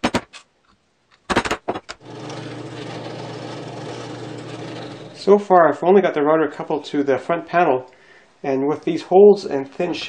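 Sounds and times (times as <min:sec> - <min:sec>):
drill press drilling into plywood: 0:02.0 - 0:05.3.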